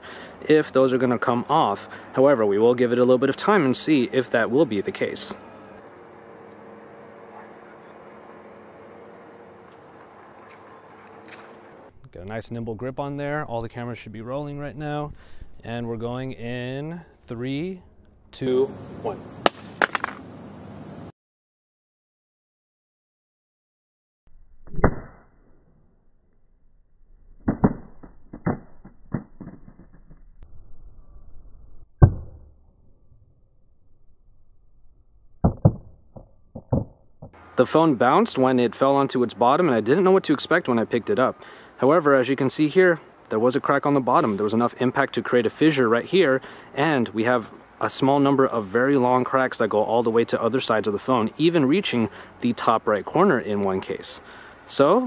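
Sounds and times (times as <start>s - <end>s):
faint drone: 0.0s - 19.7s
background hum and hiss: 0.0s - 21.1s, 37.4s - 55.0s
smartphone clattering on pavement: 19.4s - 20.3s.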